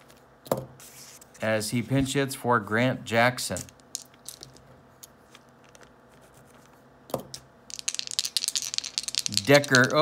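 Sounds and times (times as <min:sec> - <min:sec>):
hands handling game pieces: 0:03.5 - 0:10.0.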